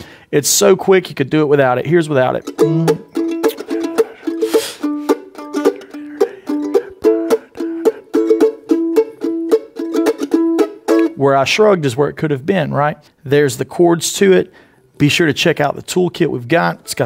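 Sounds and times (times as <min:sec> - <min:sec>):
mandolin strumming chords: 0:01.7 - 0:11.6.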